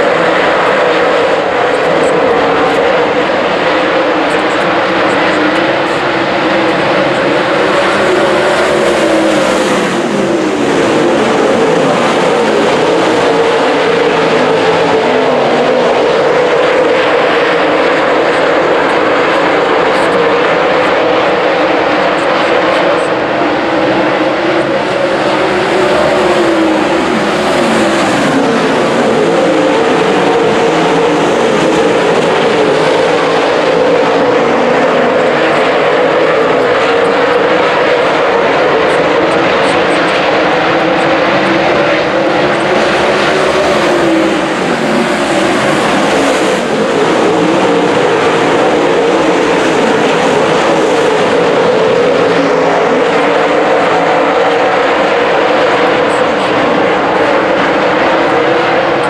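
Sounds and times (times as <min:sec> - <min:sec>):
race car engines roaring: 0:00.0 - 0:59.0.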